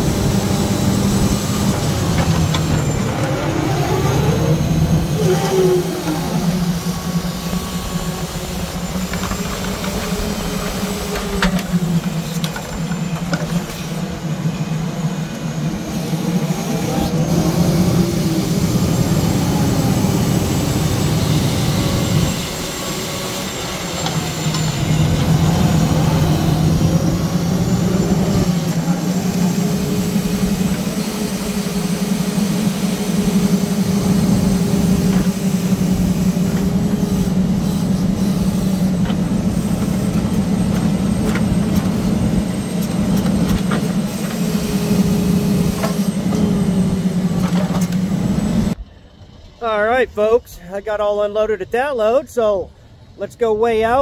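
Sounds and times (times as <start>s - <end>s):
truck engine running under load: 0.0s - 53.2s
hydraulic whine: 0.0s - 54.0s.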